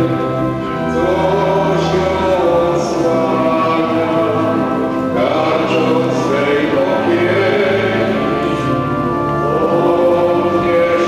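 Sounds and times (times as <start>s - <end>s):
group singing a hymn: 0.0s - 11.0s.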